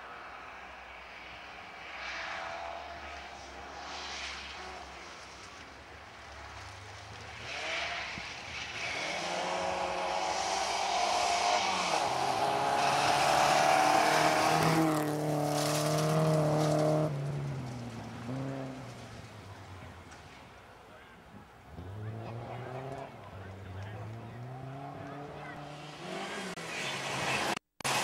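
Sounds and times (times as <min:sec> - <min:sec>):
rally car engine passing: 0:00.9 - 0:28.0.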